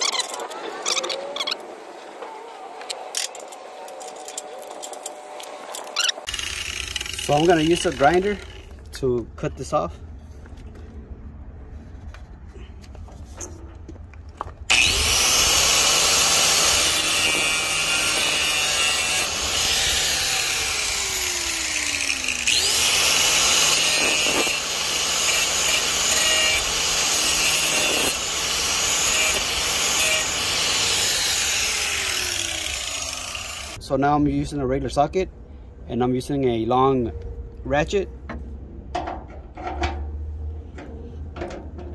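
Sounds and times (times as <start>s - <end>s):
angle grinder cutting metal: 4.3s - 8.7s, 14.7s - 33.8s.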